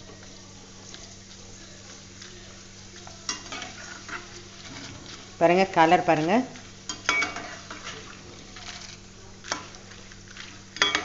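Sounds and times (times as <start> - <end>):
food deep-frying in oil: 0.0 - 11.0
ladle scraping pan: 3.3 - 5.4, 6.1 - 11.0.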